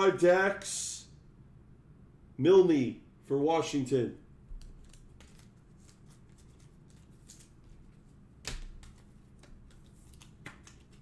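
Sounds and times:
trading card rustling: 4.6 - 11.0.

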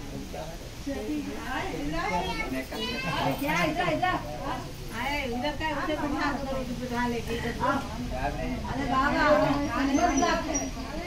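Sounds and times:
adults chatting: 0.0 - 11.0
children's voices: 2.0 - 3.4.

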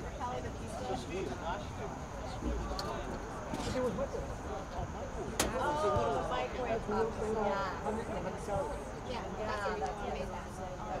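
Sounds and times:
open-air background: 0.0 - 11.0.

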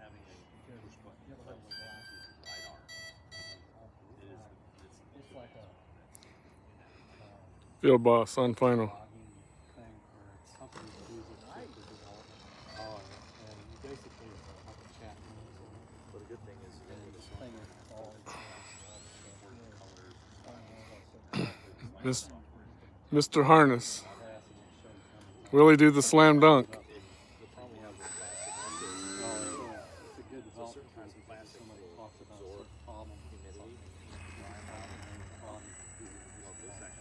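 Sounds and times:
faint voices: 0.0 - 37.0
electronic beeper tone and beeps: 23.1 - 37.0.

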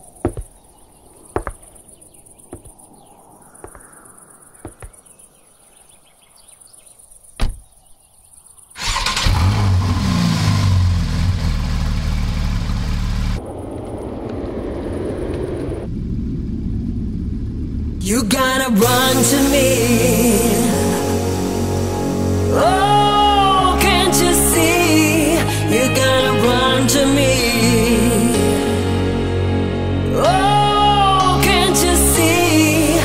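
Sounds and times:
car engine starting and revving: 8.8 - 20.6.

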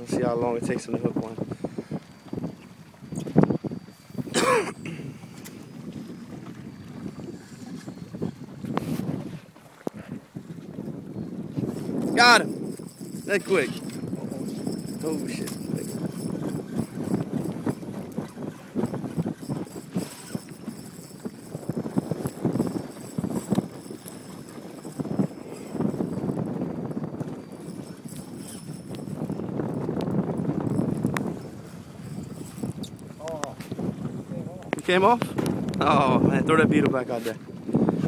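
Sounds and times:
water slapping boat hull: 0.0 - 38.0
wind on microphone: 0.0 - 38.0
spinning reel cranking: 11.6 - 33.3.

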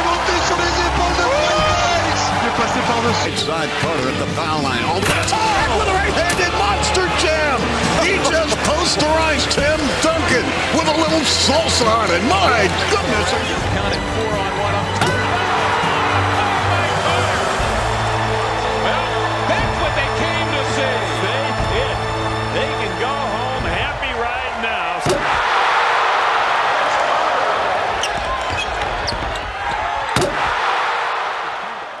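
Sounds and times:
crowd cheering: 0.0 - 32.0
shoe squeaks: 28.0 - 29.6.

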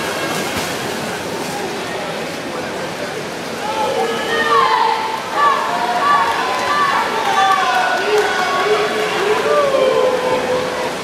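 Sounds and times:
spectators shouting and cheering: 3.6 - 11.0.

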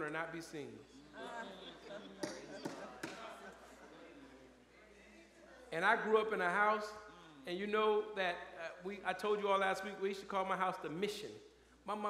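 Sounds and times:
person speaking in large room: 0.0 - 12.0.

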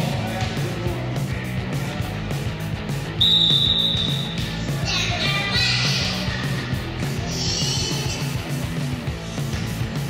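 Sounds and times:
rock music with guitar: 0.0 - 10.0
referee's whistle blast: 3.2 - 4.4.

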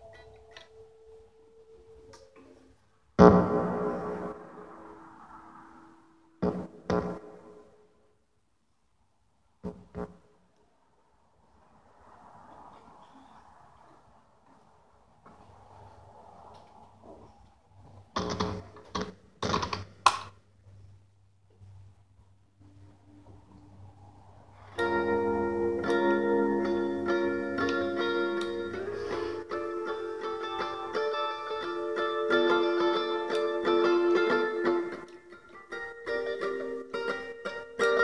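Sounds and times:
electric guitar note ringing: 24.8 - 38.0.

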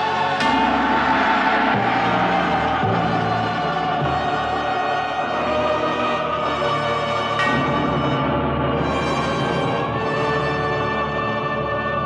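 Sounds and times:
choir holding sustained notes: 0.0 - 12.0
low timpani strokes: 0.0 - 12.0
orchestra: 0.0 - 12.0.

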